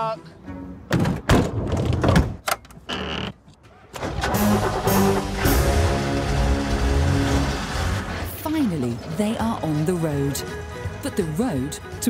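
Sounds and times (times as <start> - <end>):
music: 0.0 - 1.0, 4.1 - 8.2, 8.9 - 12.0
van doors shutting: 3.9 - 8.2.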